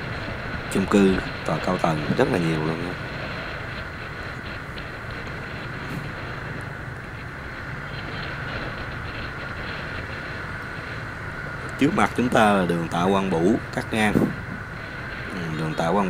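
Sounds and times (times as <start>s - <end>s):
motorbike traffic rumble: 0.0s - 16.0s.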